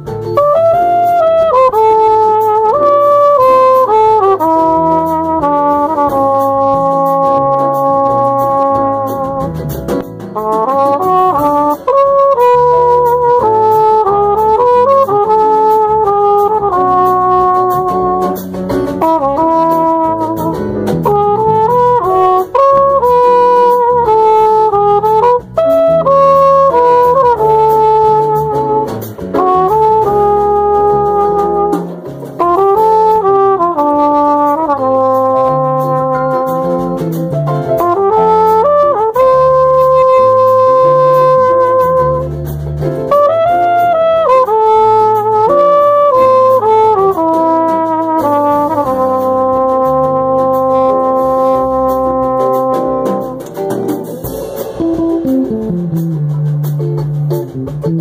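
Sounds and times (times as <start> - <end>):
bass line: 0.0 - 58.0
brass horn melody: 0.0 - 58.0.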